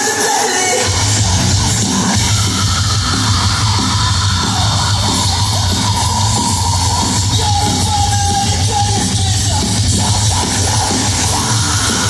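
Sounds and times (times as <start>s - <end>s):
live rock band playing: 0.0s - 12.0s.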